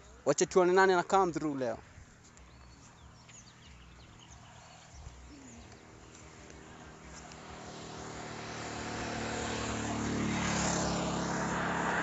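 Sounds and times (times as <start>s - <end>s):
motorcycle passing: 1.1s - 12.0s
car tyre noise: 2.0s - 12.0s.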